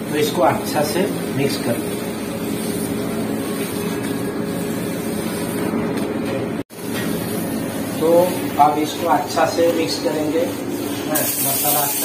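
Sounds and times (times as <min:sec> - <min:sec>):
kitchen ventilation hum: 0:00.0 - 0:12.0.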